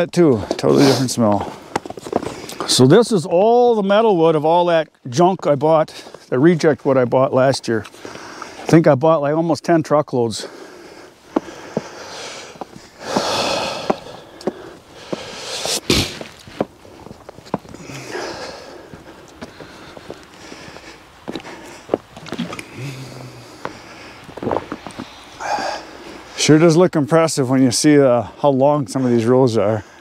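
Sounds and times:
sniffs and breaths: 0:00.4 - 0:02.8, 0:07.9 - 0:08.7, 0:10.4 - 0:26.4
footsteps crunching in snow: 0:11.2 - 0:25.2.

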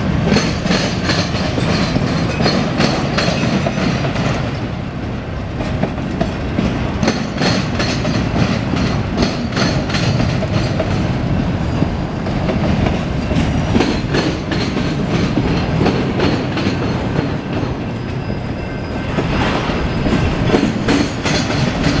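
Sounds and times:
wheels clacking over rail joints: 0:00.0 - 0:04.7, 0:05.5 - 0:22.0
train wheels rumbling on rail: 0:00.0 - 0:22.0.

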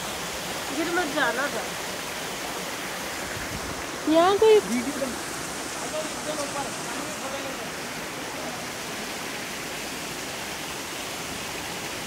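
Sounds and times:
small waterfall rushing: 0:00.0 - 0:12.0.

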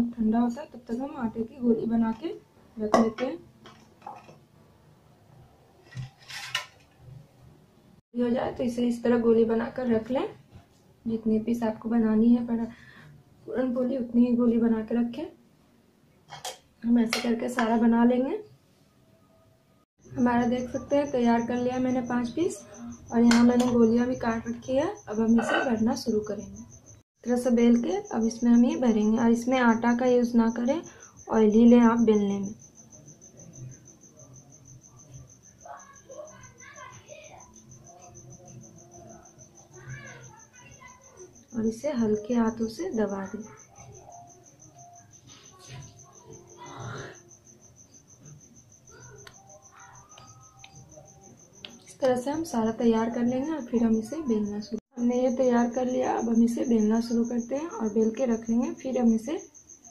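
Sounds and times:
steel bowl scraping clatter: 0:05.9 - 0:07.0
cricket chirping: 0:20.0 - 0:59.9.

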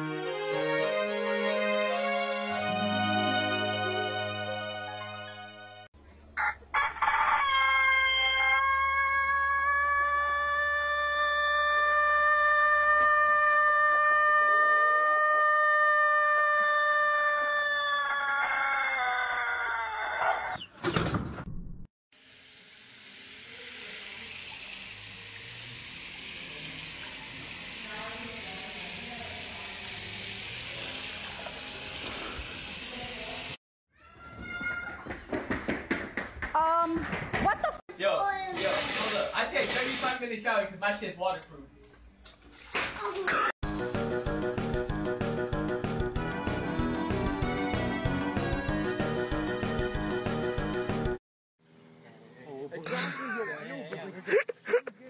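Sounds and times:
rooster crowing: 0:06.4 - 0:20.7
sink sprayer running water: 0:22.1 - 0:33.6.

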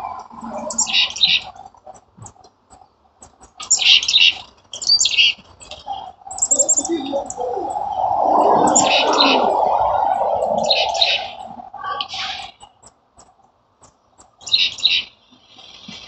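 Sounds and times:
songbirds chirping: 0:00.0 - 0:16.0
steady low-pitched noise: 0:06.1 - 0:12.1.

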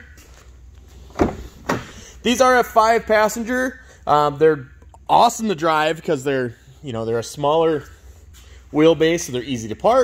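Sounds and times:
car door latch clunk: 0:01.1 - 0:02.0.

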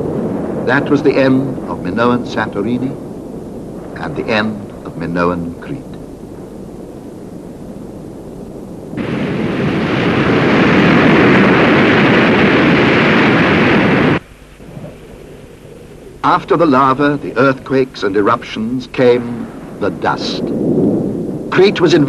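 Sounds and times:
heavy waves breaking: 0:00.0 - 0:22.0
low rumble: 0:00.0 - 0:22.0.

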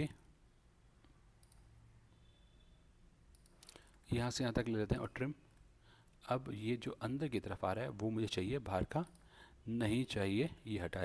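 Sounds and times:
faint computer mouse clicks: 0:01.0 - 0:01.7.

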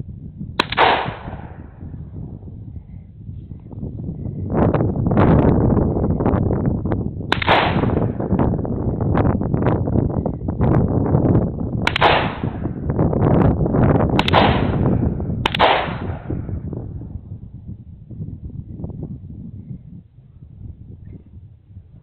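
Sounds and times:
wind buffeting microphone: 0:00.0 - 0:22.0
shotgun shots echoing: 0:00.6 - 0:01.7, 0:07.3 - 0:08.2, 0:11.9 - 0:12.8, 0:14.2 - 0:16.4.

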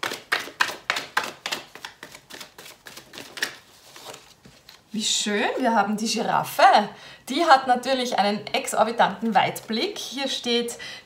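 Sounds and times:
cards being shuffled: 0:00.0 - 0:04.9.

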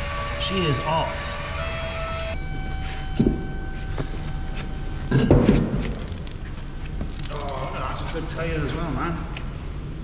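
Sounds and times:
metal clinks and knocks: 0:05.7 - 0:08.2.

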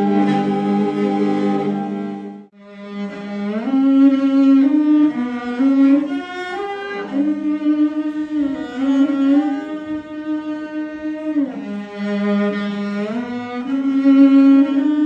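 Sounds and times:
bowed fiddles playing slow melody: 0:00.0 - 0:15.0.

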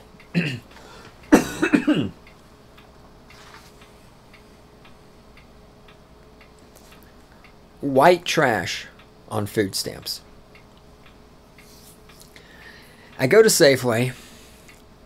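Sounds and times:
low steady hum: 0:00.0 - 0:15.0
man clearing throat: 0:00.3 - 0:00.7, 0:01.3 - 0:02.2
faint irregular ticks: 0:02.2 - 0:08.0, 0:08.6 - 0:15.0.

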